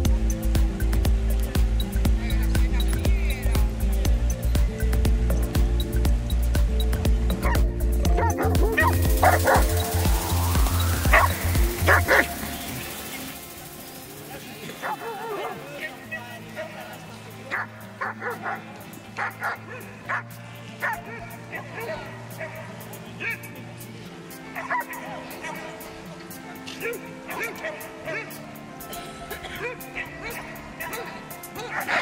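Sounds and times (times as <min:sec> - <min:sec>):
background music with heavy bass beat: 0:00.0 - 0:15.8
dogs barking and yipping: 0:07.3 - 0:13.9, 0:14.6 - 0:22.7, 0:24.5 - 0:25.7, 0:26.9 - 0:28.3, 0:29.4 - 0:32.0.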